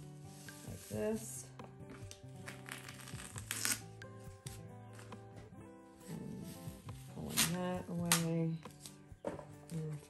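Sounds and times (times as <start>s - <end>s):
soft background music: 0.0s - 10.0s
tape peeling off paper: 2.0s - 3.9s, 7.2s - 8.9s.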